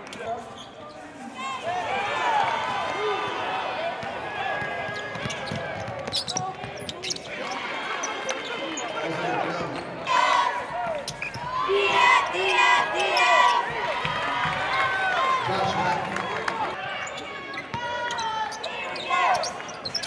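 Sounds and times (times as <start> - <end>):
crowd chatter: 0.0 - 20.0
basketball bouncing on court: 4.0 - 6.9.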